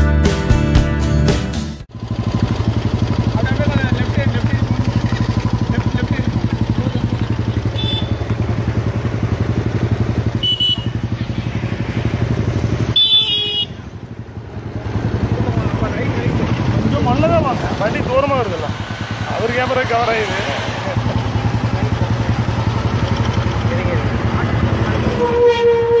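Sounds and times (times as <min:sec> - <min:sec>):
motorcycle engine running: 0:01.9 - 0:26.0
horn toots: 0:07.6 - 0:08.5, 0:10.2 - 0:11.5, 0:12.8 - 0:14.0, 0:24.8 - 0:26.0.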